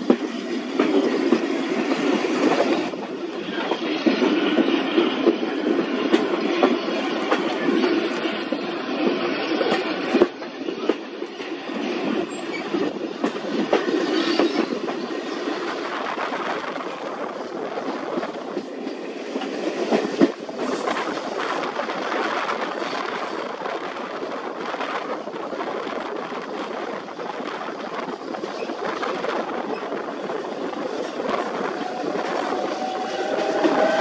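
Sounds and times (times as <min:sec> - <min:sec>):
train rumble: 0:00.0 - 0:34.0
train wheels clicking over rail joints: 0:00.0 - 0:34.0.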